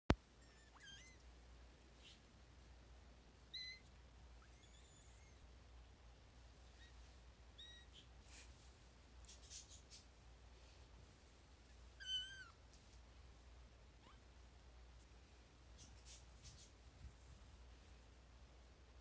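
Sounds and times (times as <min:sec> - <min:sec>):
kittens mewing: 0:04.4 - 0:05.4
soft rustling: 0:06.4 - 0:18.2.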